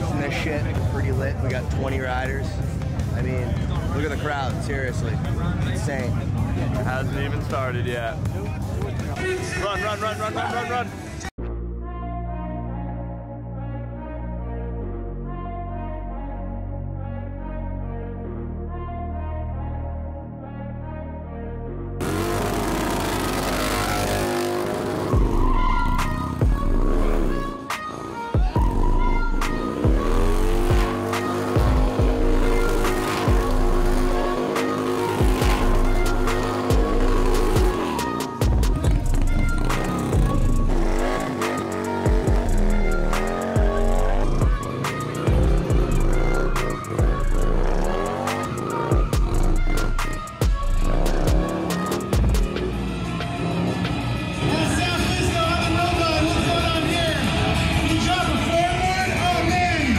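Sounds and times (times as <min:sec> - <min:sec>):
motorcycle engine revving: 0:22.0 - 0:59.4
music with heavy beat: 0:25.0 - 0:27.2, 0:28.4 - 0:52.8.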